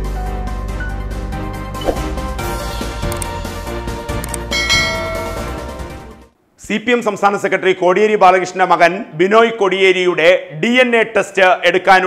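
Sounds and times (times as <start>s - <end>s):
background music: 0.0s - 6.4s
bright bell chime: 4.5s - 5.9s.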